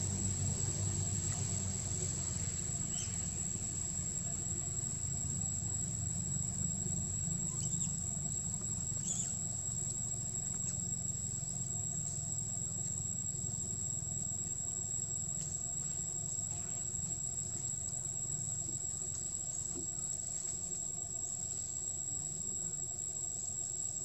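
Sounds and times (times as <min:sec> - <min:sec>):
high-pitched insect drone: 0:02.3 - 0:24.0.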